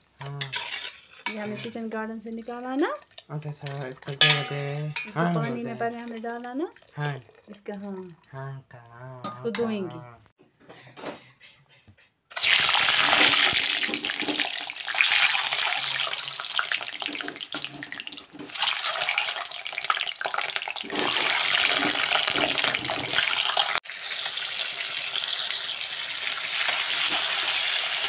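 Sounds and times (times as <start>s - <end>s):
eggs sizzling in hot oil: 0.0s - 8.2s, 12.3s - 28.0s.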